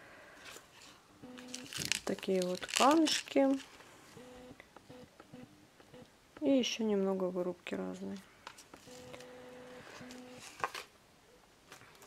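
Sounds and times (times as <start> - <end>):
plastic bag rustling: 0.5 - 3.9.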